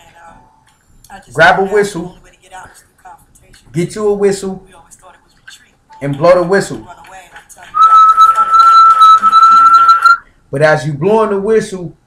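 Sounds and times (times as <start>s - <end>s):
whistle long steady note: 7.8s - 10.2s.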